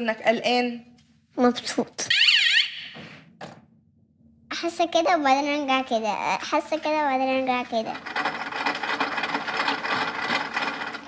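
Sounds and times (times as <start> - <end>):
fast mechanical rattle: 6.7 - 11.0.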